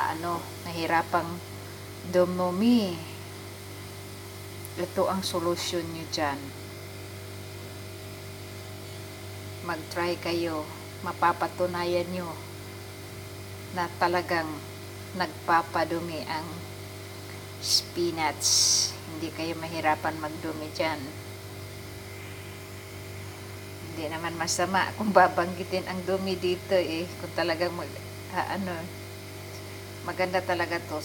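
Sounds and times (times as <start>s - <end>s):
faint high drone: 0.0s - 3.4s, 17.3s - 31.0s
low mechanical hum: 0.0s - 31.0s.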